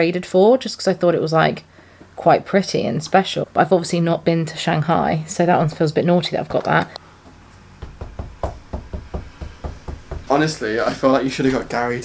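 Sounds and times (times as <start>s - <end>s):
fist knocking on board: 7.8s - 10.4s.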